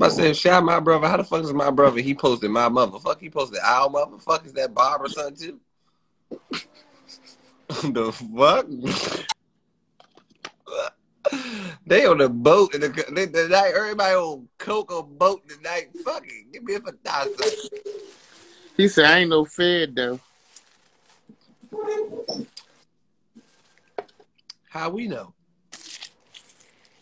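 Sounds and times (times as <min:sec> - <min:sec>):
faint room noise: 0:00.0 - 0:27.0
man laughing: 0:06.3 - 0:09.4.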